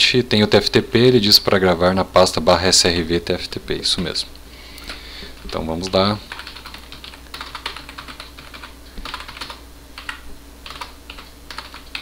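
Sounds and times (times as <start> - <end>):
typing on computer keyboard: 5.5 - 12.0.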